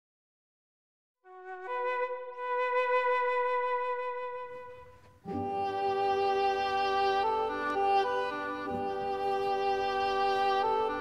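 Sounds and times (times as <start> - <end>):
held flute note: 1.3 - 11.0.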